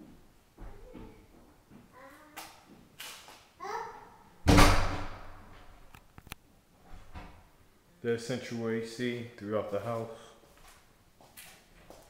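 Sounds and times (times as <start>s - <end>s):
loud thud: 4.4s - 5.6s.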